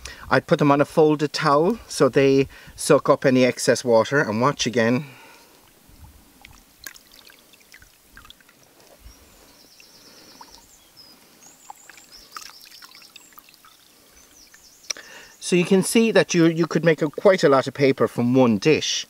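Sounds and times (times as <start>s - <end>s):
water sloshing and dripping: 5.4s - 14.9s.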